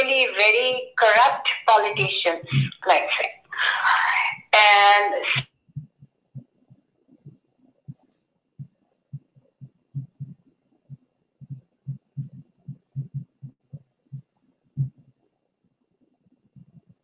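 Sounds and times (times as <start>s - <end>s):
garbled voice on video call: 0.0s - 5.4s.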